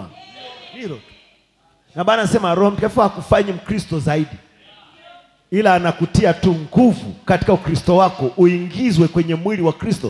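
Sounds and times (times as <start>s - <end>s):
drawn-out wavering voice: 0.0s - 1.2s
person preaching: 0.0s - 1.3s, 1.9s - 10.0s.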